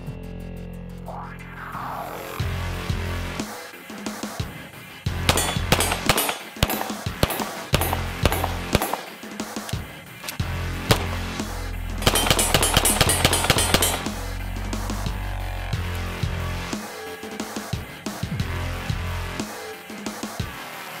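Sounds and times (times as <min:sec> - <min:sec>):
electronic music with heavy bass: 0:00.0 - 0:03.5, 0:10.4 - 0:19.6
pistol shots: 0:05.3 - 0:09.6, 0:10.9 - 0:14.3.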